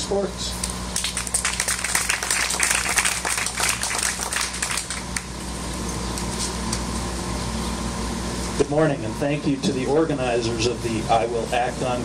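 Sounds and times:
steady low hum: 0:00.0 - 0:12.0
audience applauding: 0:01.0 - 0:05.3.

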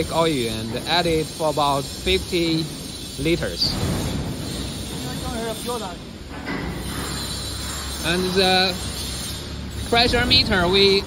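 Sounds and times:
machinery hum: 0:00.0 - 0:11.0.

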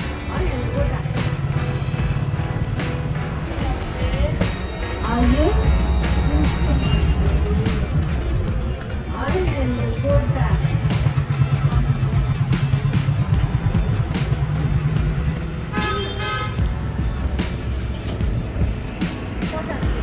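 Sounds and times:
road traffic: 0:00.0 - 0:20.0
vehicle engine running close by: 0:05.2 - 0:20.0
vehicle horn: 0:15.6 - 0:16.7.

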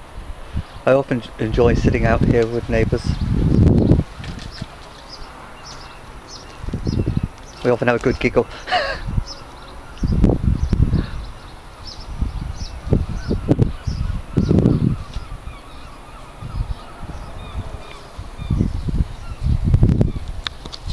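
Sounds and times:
rumbles and thumps on microphone: 0:02.1 - 0:04.8.

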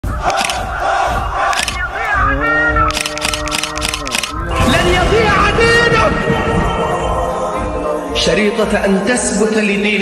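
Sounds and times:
chorus of voices chanting: 0:00.0 - 0:03.0, 0:04.3 - 0:09.1.

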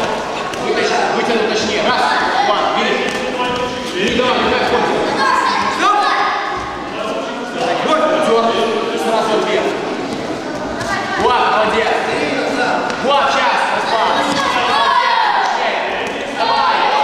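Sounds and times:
voices shouting in echoing hall: 0:00.0 - 0:17.0.

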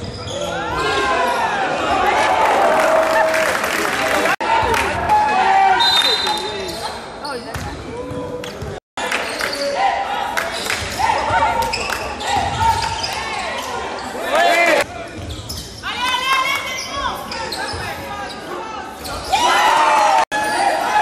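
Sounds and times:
sneakers squeaking on floor: 0:00.0 - 0:01.1, 0:05.8 - 0:09.8, 0:10.5 - 0:14.2, 0:14.8 - 0:19.5.

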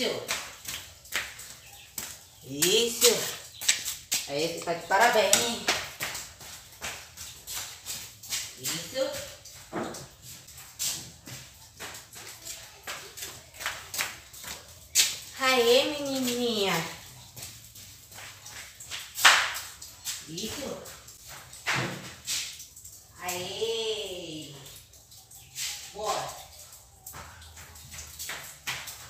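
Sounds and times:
flip-flops slapping on concrete: 0:00.0 - 0:23.5, 0:25.5 - 0:29.0.

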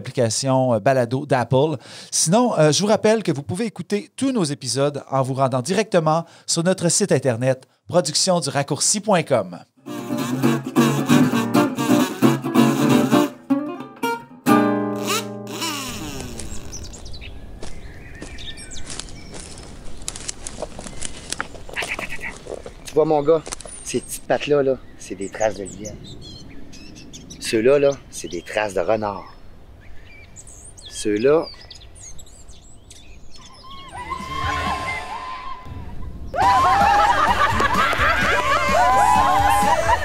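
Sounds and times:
guitar chord sliding down: 0:09.9 - 0:16.3
high bird chirps: 0:15.6 - 0:19.7, 0:21.8 - 0:35.1
women laughing loudly: 0:36.4 - 0:40.0.

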